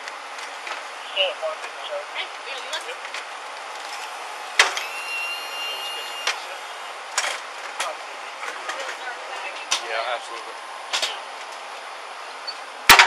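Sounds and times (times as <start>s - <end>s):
steady high tone: 3.8s - 7.2s.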